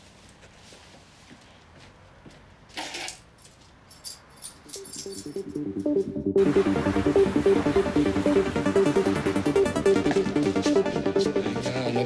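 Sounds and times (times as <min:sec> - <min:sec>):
keys jingling: 0:02.8 - 0:05.6
music: 0:04.8 - 0:12.0.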